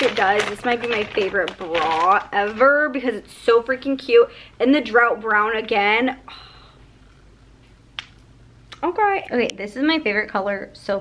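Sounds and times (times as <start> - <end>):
woman speaking: 0.0 - 6.8, 8.7 - 11.0.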